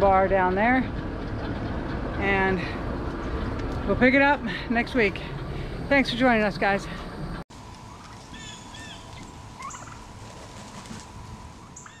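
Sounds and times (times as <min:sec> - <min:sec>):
turkeys calling: 0:00.0 - 0:04.6, 0:05.2 - 0:12.0.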